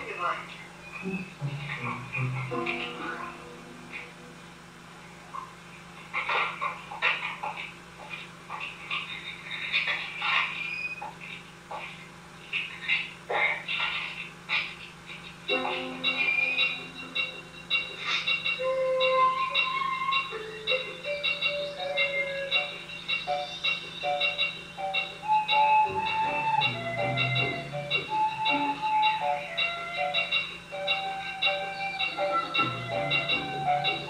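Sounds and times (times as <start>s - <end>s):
recorder playing held notes: 15.5s - 34.0s.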